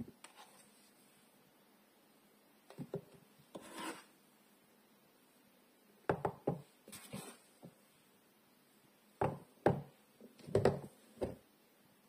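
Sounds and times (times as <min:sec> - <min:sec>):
soap bar scraping: 0:03.5 - 0:04.1.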